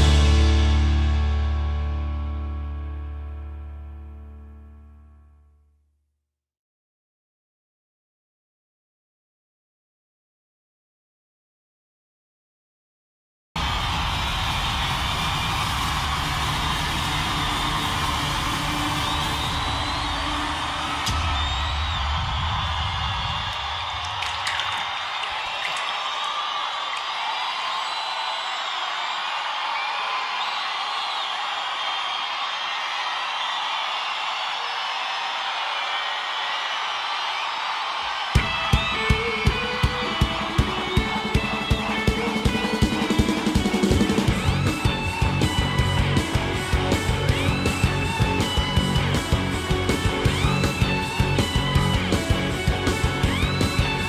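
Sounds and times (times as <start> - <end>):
crowd cheering and whooping: 0.0 - 2.2, 13.6 - 54.0
sustained low music: 0.0 - 5.4.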